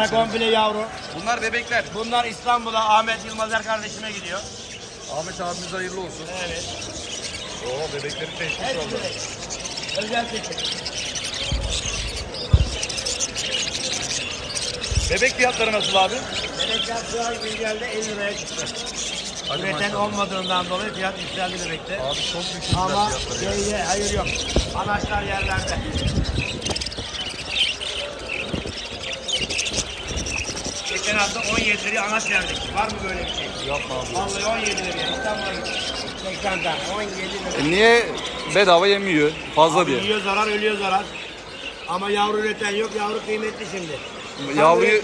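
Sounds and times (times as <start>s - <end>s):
budgerigars chirping: 0.0s - 45.0s.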